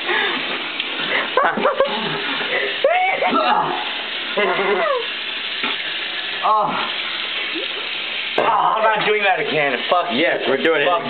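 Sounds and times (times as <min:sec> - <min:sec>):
faucet water running into sink: 0:00.0 - 0:11.0.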